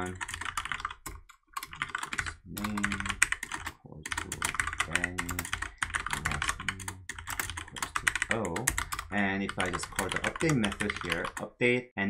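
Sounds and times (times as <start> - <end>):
rapid keyboard typing: 0.0 - 11.6.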